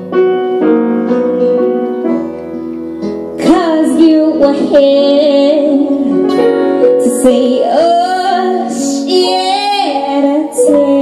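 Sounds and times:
acoustic guitar: 0:00.0 - 0:11.0
grand piano: 0:00.0 - 0:11.0
woman singing: 0:03.4 - 0:11.0.

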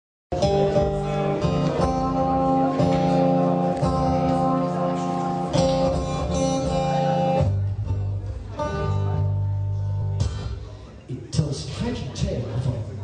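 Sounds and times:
acoustic guitar through a pa: 0:00.3 - 0:11.6.

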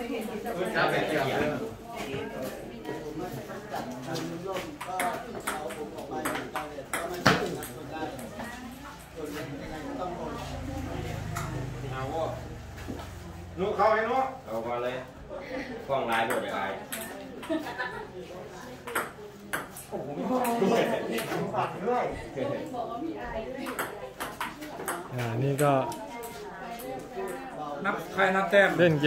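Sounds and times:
table tennis ball hits: 0:04.8 - 0:08.3, 0:16.1 - 0:17.1, 0:18.8 - 0:19.8, 0:23.6 - 0:25.6.

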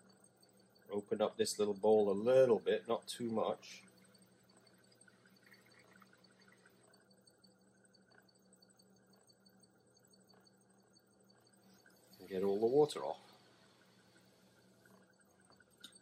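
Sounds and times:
potter's wheel motor hum: 0:00.0 - 0:16.0.

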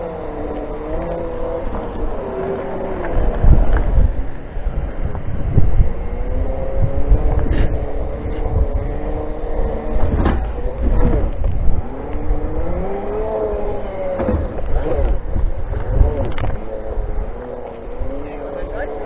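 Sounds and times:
electric motors whining: 0:00.0 - 0:19.0
wind rumble on microphone: 0:00.0 - 0:19.0
wheels knocking over bumps: 0:07.2 - 0:18.3.

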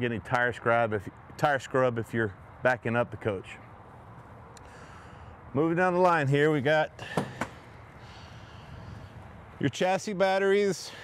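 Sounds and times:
sharp latch clicks: 0:07.1 - 0:07.6.

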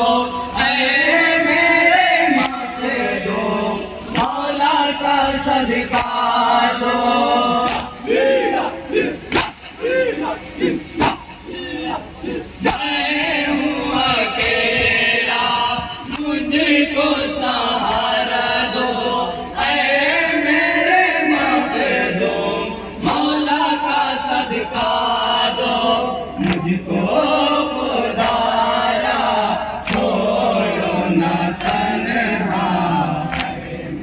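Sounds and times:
men chanting a lament: 0:00.0 - 0:34.0
hands slapping chests: 0:07.6 - 0:08.0, 0:09.3 - 0:09.7, 0:11.0 - 0:11.3.

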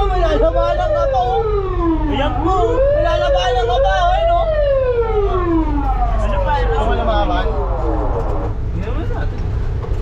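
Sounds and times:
emergency siren wailing: 0:00.0 - 0:08.6
warbling siren: 0:00.0 - 0:08.7
truck low rumble: 0:00.0 - 0:10.0.

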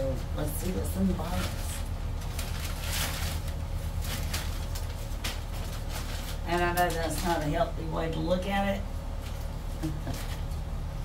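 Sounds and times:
packing paper rustling: 0:00.1 - 0:08.0, 0:09.0 - 0:10.8.

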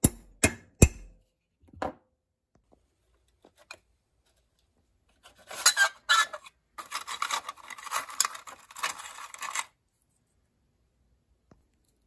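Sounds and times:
tool accessories rattling in plastic drawer: 0:06.8 - 0:09.7.

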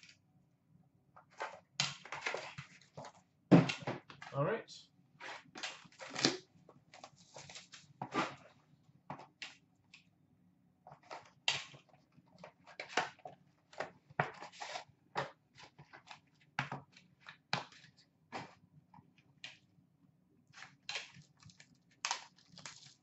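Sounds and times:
wrapper and cardboard crinkling: 0:05.2 - 0:08.5, 0:20.6 - 0:23.0.

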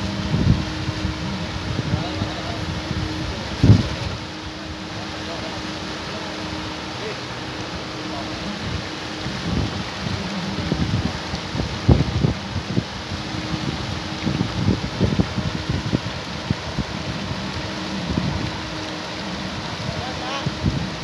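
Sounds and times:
wind buffeting the microphone: 0:00.0 - 0:05.1, 0:08.4 - 0:21.0
paddlewheel aerators splashing: 0:00.0 - 0:21.0.

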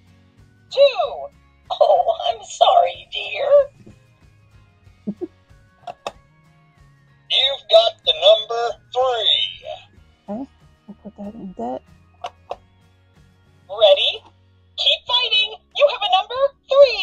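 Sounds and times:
talking toy synthesized voice: 0:00.8 - 0:03.8, 0:07.3 - 0:11.8, 0:13.7 - 0:17.0.

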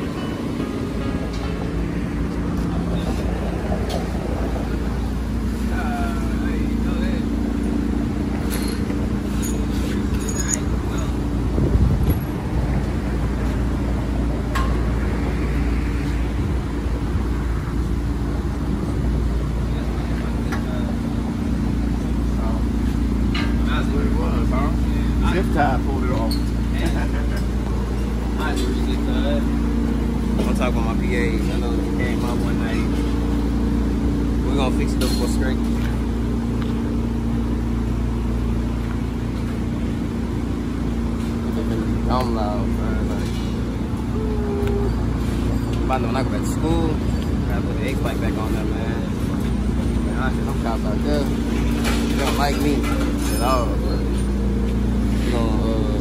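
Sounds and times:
truck engine idling: 0:00.0 - 0:56.0.

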